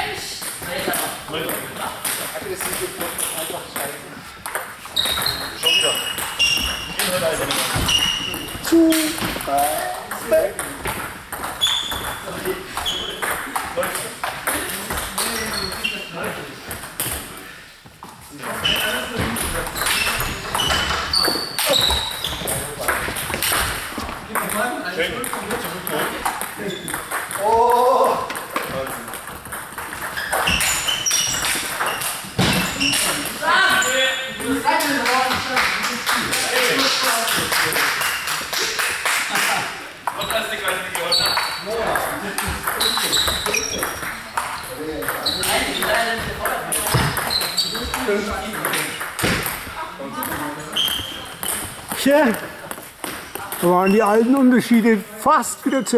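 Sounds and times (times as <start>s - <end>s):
table tennis balls clicking: 0.4s - 15.9s, 18.5s - 33.4s, 40.0s - 54.5s.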